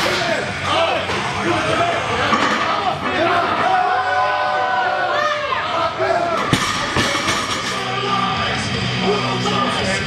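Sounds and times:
spectators shouting: 0.0s - 7.0s
barbell dropping on floor: 6.5s - 7.9s.

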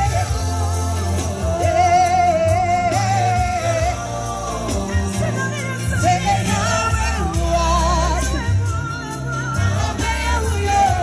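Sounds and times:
backing track with heavy bass: 0.0s - 11.0s
woman singing into microphone: 0.0s - 11.0s.

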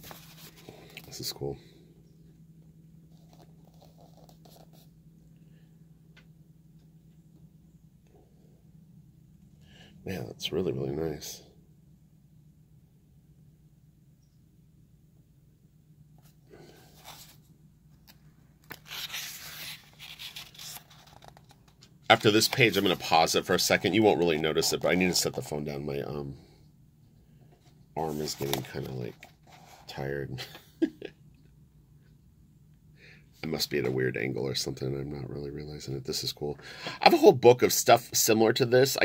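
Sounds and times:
book pages rustling: 0.0s - 1.2s, 3.1s - 4.9s, 16.2s - 24.7s, 27.6s - 29.9s.

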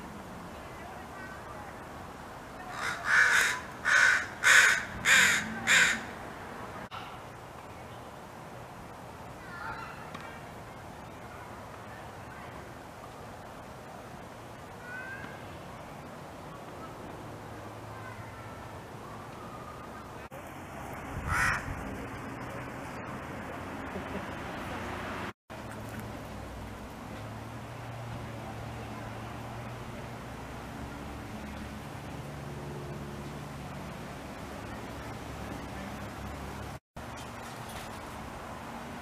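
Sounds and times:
crow cawing: 2.7s - 6.2s, 21.3s - 21.6s.

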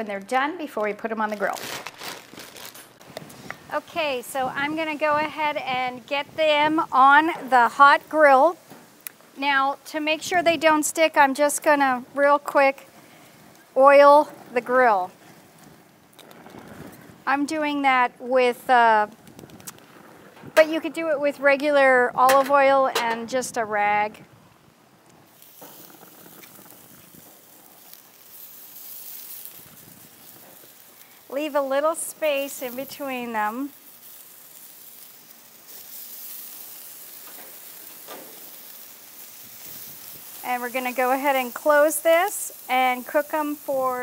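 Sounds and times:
oil spray hissing on hot grill: 25.2s - 44.0s.

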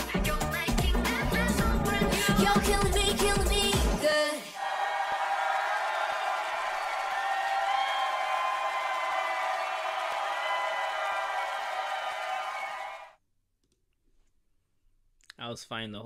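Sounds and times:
audience screaming and cheering: 4.6s - 13.1s.

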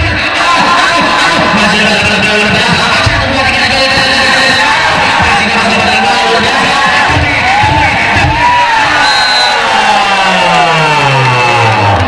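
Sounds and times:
music: 0.0s - 9.6s
crowd shouting and cheering: 0.0s - 12.0s.

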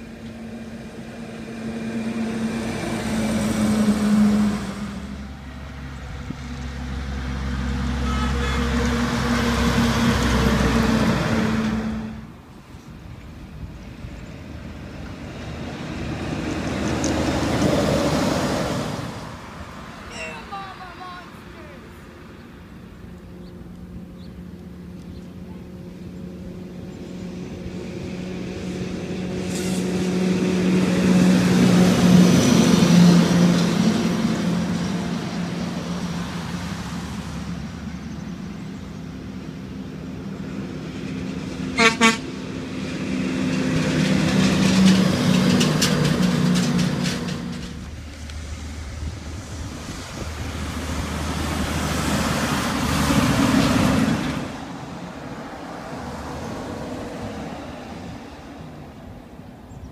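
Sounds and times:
trucks passing: 0.0s - 59.9s
truck horn toot: 7.8s - 9.6s, 41.7s - 42.3s.

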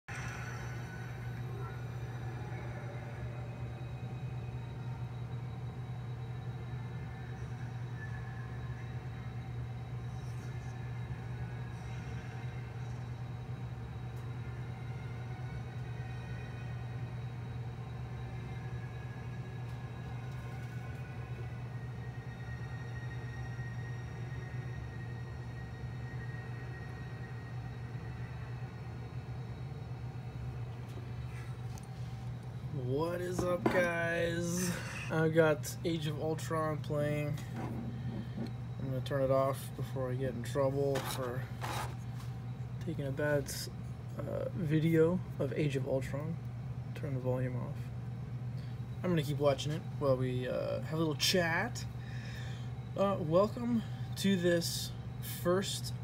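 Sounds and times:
low drone: 0.1s - 43.5s
faint film music: 0.1s - 56.0s.

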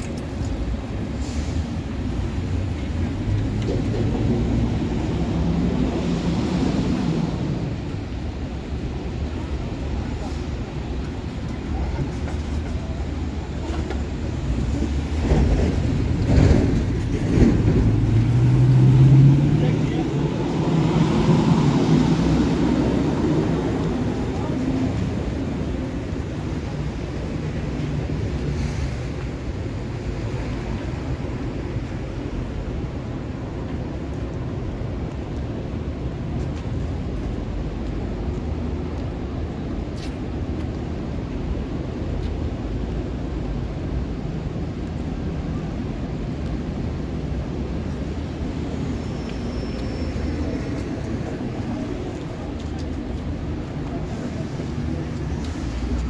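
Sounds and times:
city traffic rumble: 0.0s - 56.0s.

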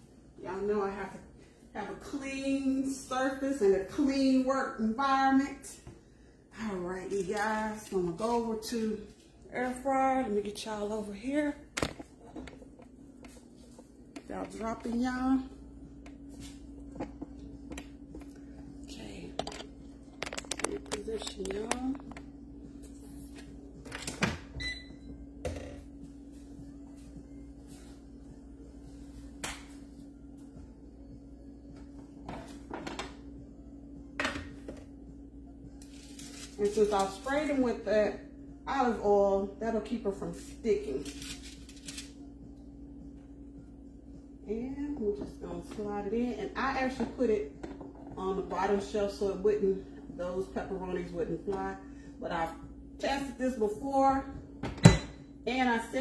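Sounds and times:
steady low hum: 0.0s - 56.0s
aluminium foil crinkling: 35.8s - 37.2s, 40.3s - 42.1s.

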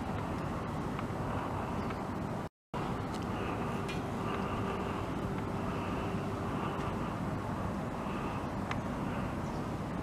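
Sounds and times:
distant engine rumble: 0.0s - 10.0s
hum: 0.0s - 10.0s.

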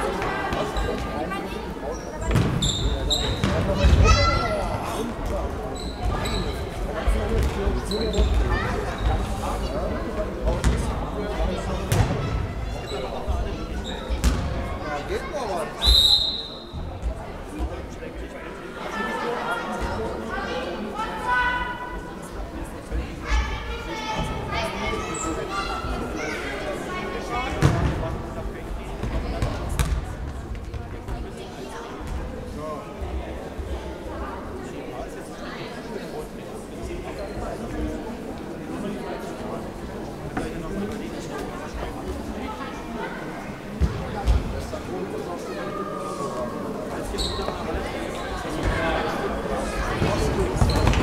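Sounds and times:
voices echoing in a hall: 0.0s - 51.0s
referee's whistle blast: 15.8s - 16.7s.

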